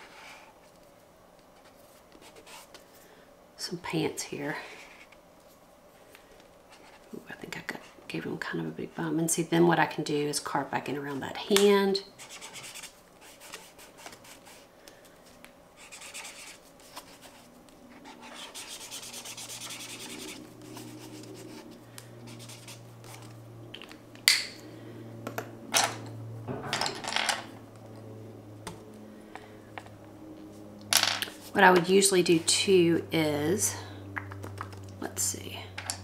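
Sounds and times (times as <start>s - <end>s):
marker tip scribbling on paper: 12.2s - 14.6s, 15.8s - 17.4s, 18.0s - 21.6s
fingertips rubbing paper: 12.2s - 14.7s, 15.8s - 23.4s.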